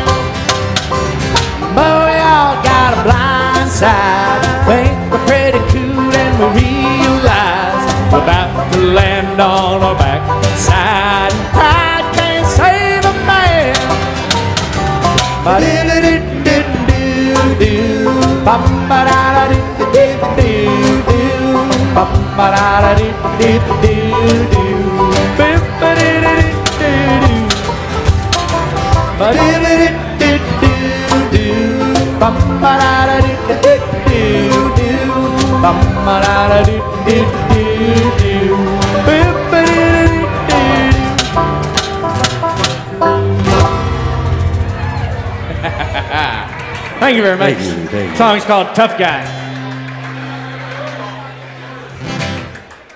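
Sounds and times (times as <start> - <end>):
strummed acoustic guitar: 0.0 - 46.4
upright double bass: 0.0 - 48.3.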